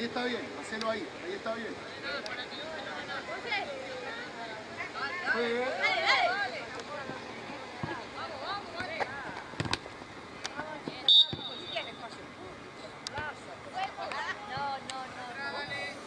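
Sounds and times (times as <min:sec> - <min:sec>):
ball kicked thuds: 0:10.8 - 0:11.6
referee's whistle blast: 0:11.1 - 0:11.9.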